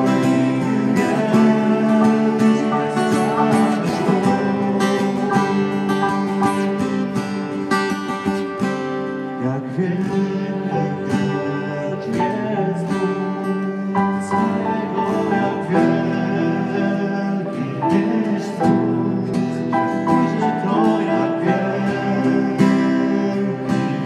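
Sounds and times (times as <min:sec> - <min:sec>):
person singing: 0:00.0 - 0:24.0
strummed acoustic guitar: 0:00.0 - 0:24.0.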